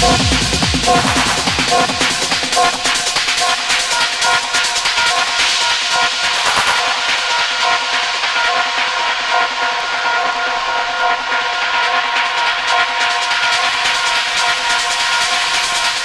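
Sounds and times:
synth drone: 0.0 - 4.0.

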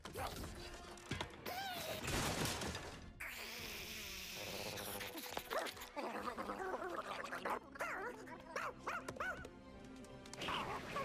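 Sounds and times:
background music: 0.0 - 11.0
cartoon dog barking: 6.8 - 9.4.

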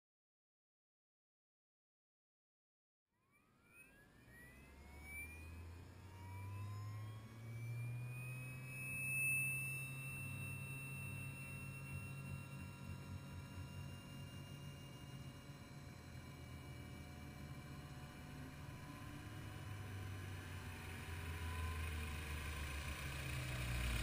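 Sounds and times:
model helicopter motor whine: 3.2 - 24.0
low hum: 3.7 - 24.0.

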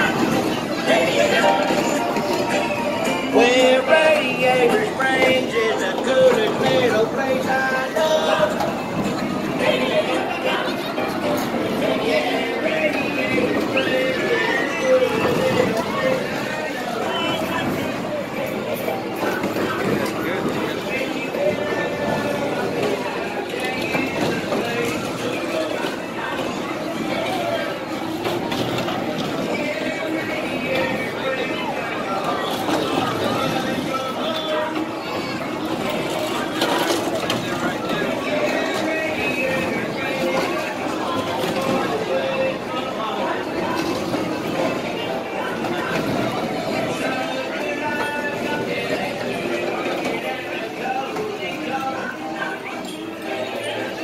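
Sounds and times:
people's voices: 0.0 - 54.0.

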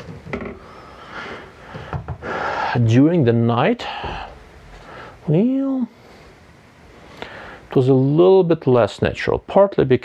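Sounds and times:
man speaking: 2.7 - 4.3, 5.2 - 6.0, 7.7 - 10.0
breath in: 7.0 - 7.7.

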